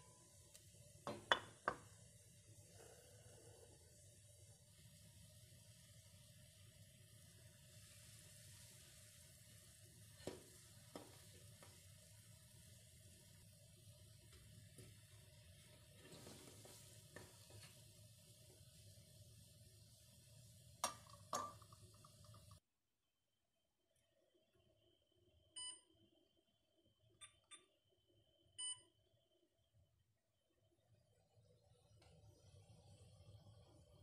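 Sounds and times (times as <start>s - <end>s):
water boiling hiss: 0.0s - 22.6s, 31.0s - 34.0s
eggs clinking against pan: 20.8s - 22.3s.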